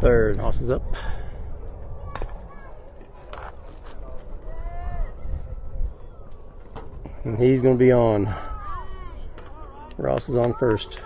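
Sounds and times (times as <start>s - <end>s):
distant voices calling out: 0.8s - 11.0s
drawn-out shout: 8.3s - 11.0s.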